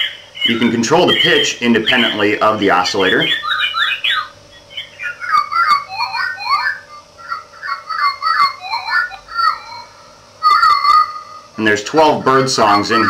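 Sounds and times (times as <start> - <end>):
digitized bird call chirps: 0.0 - 13.0
faint steady hum: 0.0 - 13.0.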